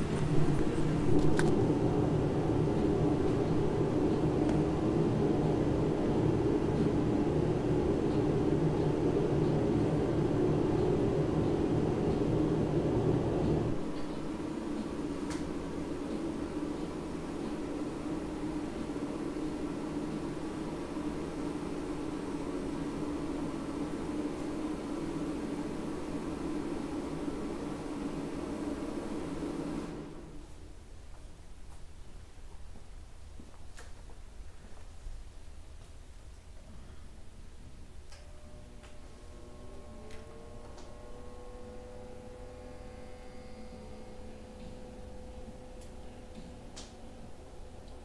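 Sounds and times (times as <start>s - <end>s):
machine hum: 0.0s - 31.3s, 36.3s - 48.0s.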